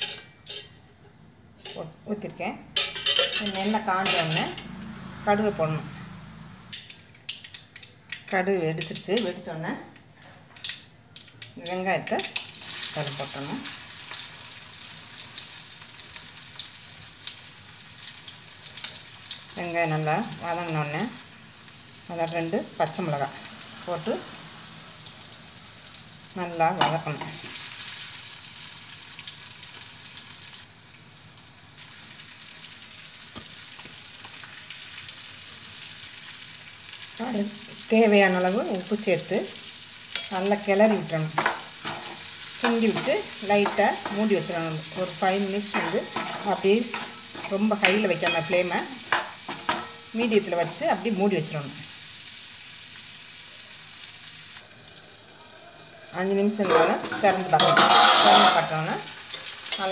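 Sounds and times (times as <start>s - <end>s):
vegetables sizzling in hot oil: 1.6s - 59.9s.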